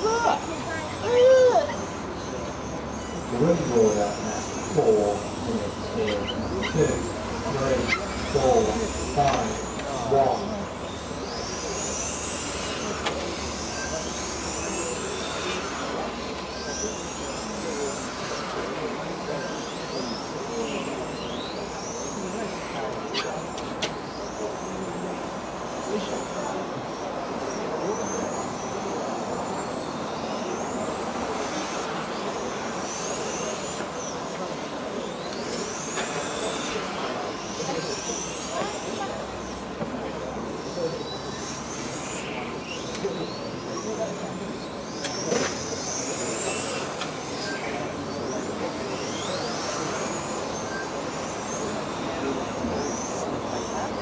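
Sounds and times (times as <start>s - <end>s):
electric motors whining: 0.0s - 54.0s
steady background noise: 0.0s - 54.0s.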